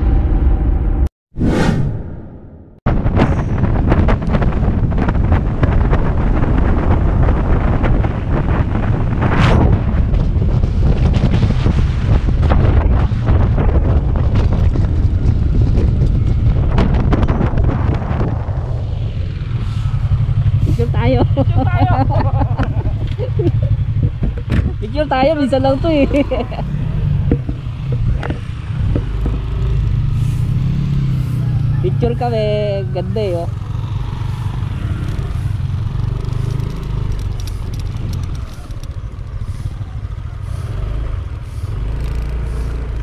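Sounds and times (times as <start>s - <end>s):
boom: 0.0s - 6.1s
motorcycle engine rumble: 2.9s - 43.0s
wind buffeting microphone: 2.9s - 43.0s.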